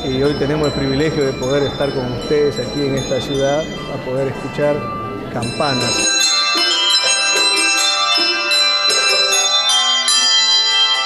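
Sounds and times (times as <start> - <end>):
handbells ringing a melody: 0.0 - 11.0.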